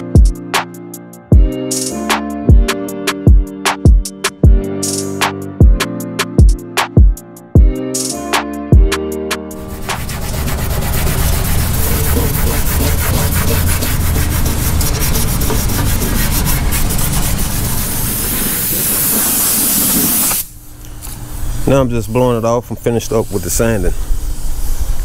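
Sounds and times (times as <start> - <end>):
abrasive pad scuffing painted metal: 9.6 - 20.4.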